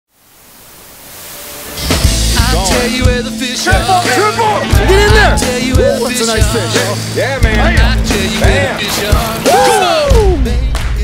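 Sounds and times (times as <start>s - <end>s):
television static hiss: 0.1s - 2.7s
rock music: 1.6s - 11.0s.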